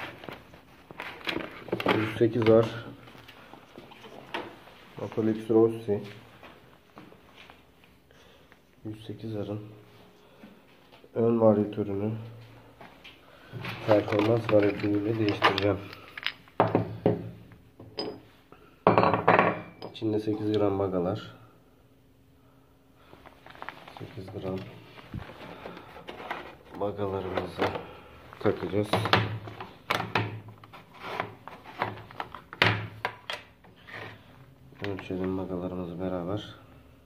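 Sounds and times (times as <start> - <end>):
metal parts rattling: 14.0 - 16.6
metal parts clinking and knocking: 14.1 - 16.8.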